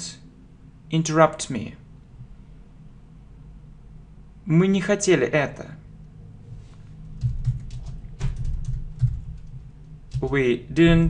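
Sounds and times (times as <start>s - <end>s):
typing on computer keyboard: 7.2s - 10.4s.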